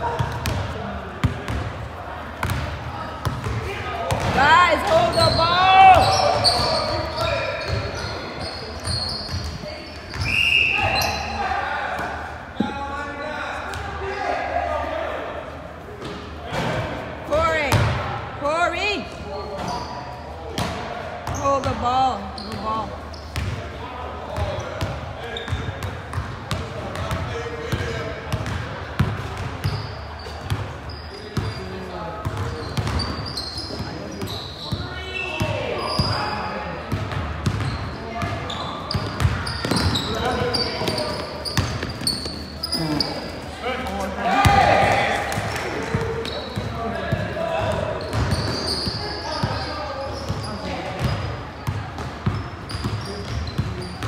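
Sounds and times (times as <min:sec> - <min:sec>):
sneakers squeaking: 0:00.0 - 0:14.0, 0:15.9 - 0:54.0
players calling out: 0:02.2 - 0:15.6, 0:37.6 - 0:51.7.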